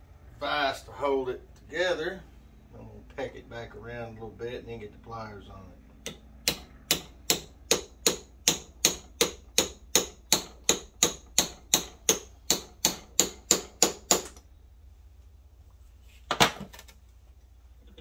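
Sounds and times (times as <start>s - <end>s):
hammer tapping steel punch: 6.0s - 14.4s.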